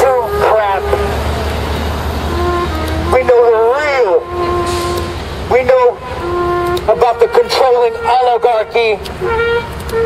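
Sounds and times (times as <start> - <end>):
street noise: 0.0 - 10.0
traffic engine rumble: 0.0 - 10.0.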